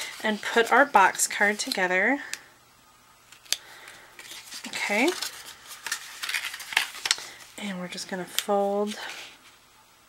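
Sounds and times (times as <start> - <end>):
cardstock rustling and crackling: 0.0 - 1.9, 3.3 - 9.6.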